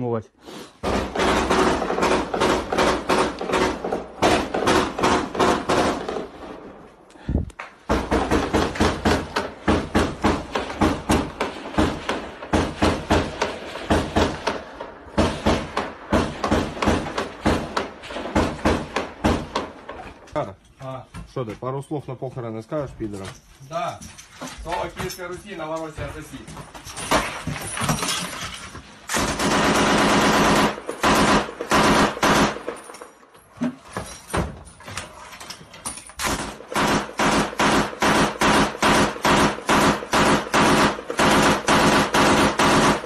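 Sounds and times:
automatic gunfire: 0:00.8 - 0:06.4, 0:07.9 - 0:19.9, 0:29.2 - 0:32.8, 0:36.2 - 0:43.0.

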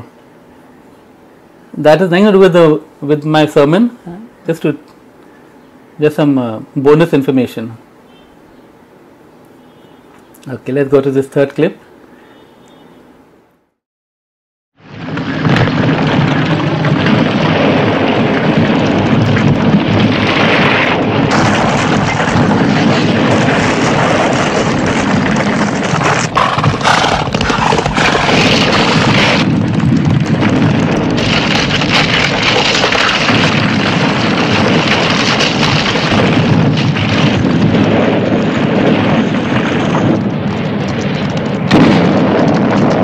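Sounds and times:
rumble of falling rock: 0:14.8 - 0:43.0
galloping horses: 0:25.4 - 0:28.3.

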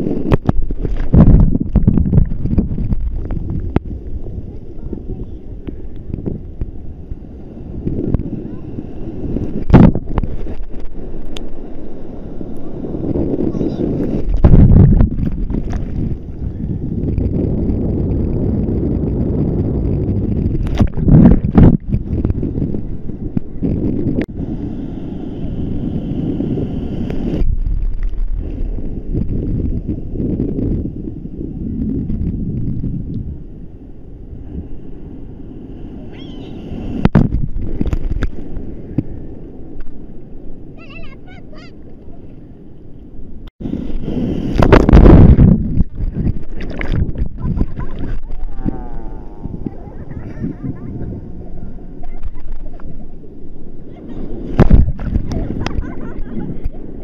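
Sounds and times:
sea surf washing: 0:00.0 - 0:57.0
wind buffeting microphone: 0:00.0 - 0:57.0.

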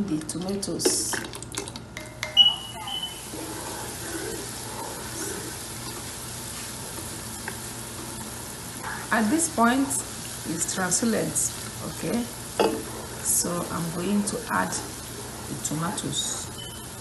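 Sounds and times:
onions sizzling in a pot: 0:02.4 - 0:17.0.

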